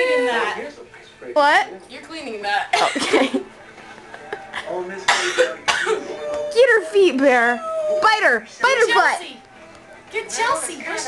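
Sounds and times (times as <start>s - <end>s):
person coughing: 5.1s - 6.1s.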